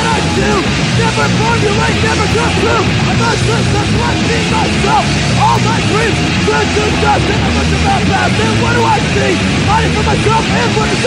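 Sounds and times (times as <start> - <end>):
hardcore punk band playing: 0.0 - 11.0.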